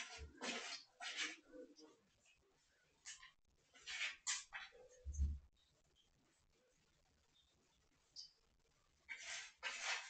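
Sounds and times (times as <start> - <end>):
hand scratching cat fur: 9.1 - 10.0.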